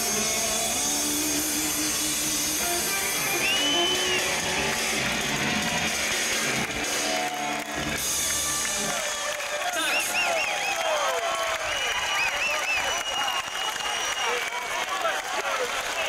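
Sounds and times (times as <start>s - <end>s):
short high rising tone: 0.0s - 5.8s
live rock band: 0.0s - 10.2s.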